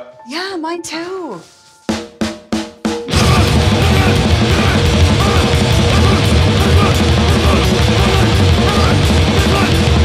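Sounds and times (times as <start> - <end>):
grindcore band playing: 1.4 - 10.0
sharp drum hits: 1.9 - 10.0.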